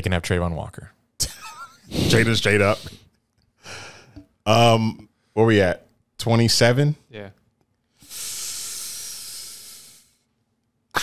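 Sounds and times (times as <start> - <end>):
long breathy hiss: 8.0 - 10.2.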